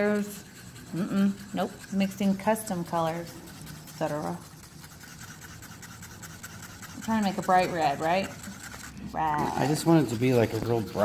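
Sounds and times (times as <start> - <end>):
stir stick scraping paper cup: 0.0 - 11.0.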